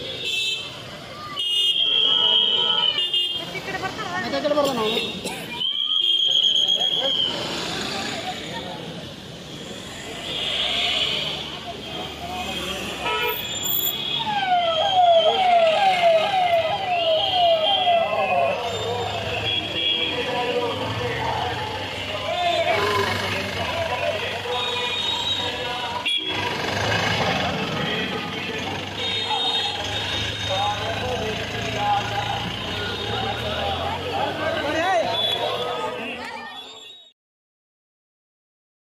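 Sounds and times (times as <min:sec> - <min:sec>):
traffic noise: 0:00.0 - 0:37.1
indistinct voices talking: 0:14.2 - 0:37.1.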